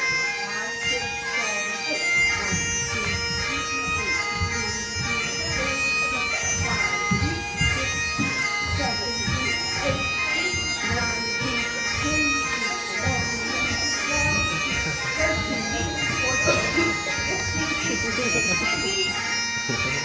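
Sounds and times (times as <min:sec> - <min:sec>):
bagpipe music: 0:00.0 - 0:20.0.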